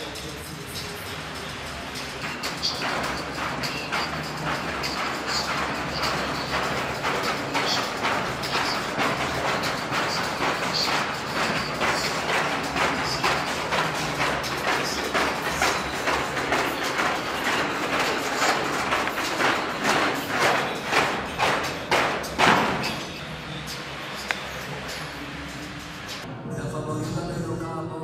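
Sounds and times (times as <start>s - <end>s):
battle ropes slamming on floor: 2.2s - 23.2s.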